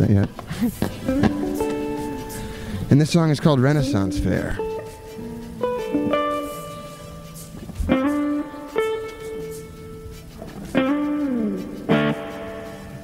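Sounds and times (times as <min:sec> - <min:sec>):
electric guitar chords ringing: 0:00.8 - 0:13.0.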